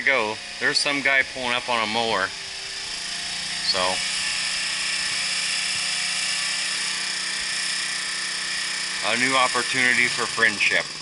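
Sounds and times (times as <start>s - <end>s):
riding lawn mower engine whining: 0.0s - 11.0s.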